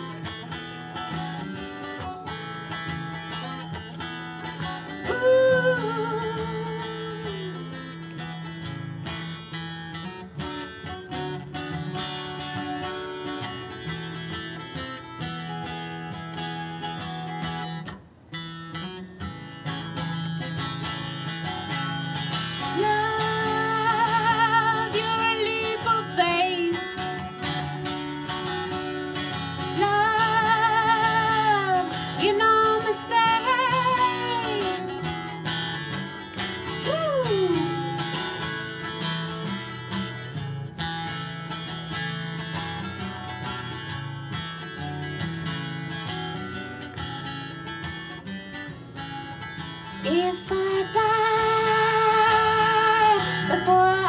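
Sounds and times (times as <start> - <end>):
acoustic guitar: 0.0 - 54.0
woman singing: 4.4 - 8.4, 22.5 - 27.7, 29.3 - 35.4, 36.6 - 38.2, 49.8 - 54.0.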